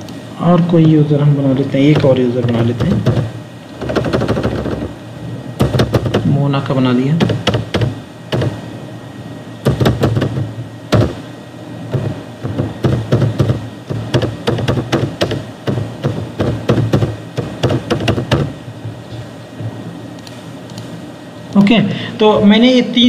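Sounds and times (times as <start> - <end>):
steady low hum: 0.0 - 23.0
keyboard typing: 1.9 - 4.9, 7.2 - 8.6, 9.6 - 11.2, 11.9 - 18.6.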